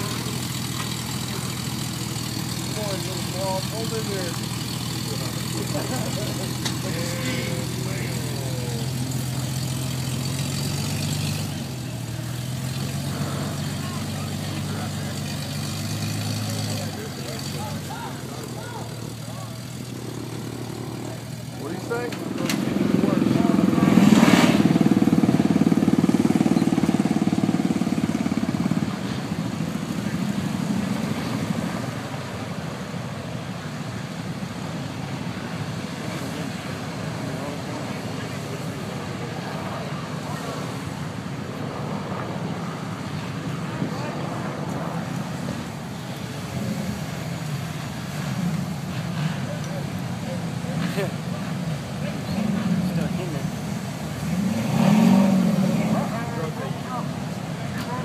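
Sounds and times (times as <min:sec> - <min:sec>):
engine idling: 0:00.0 - 0:58.0
rough engine running hard: 0:00.0 - 0:58.0.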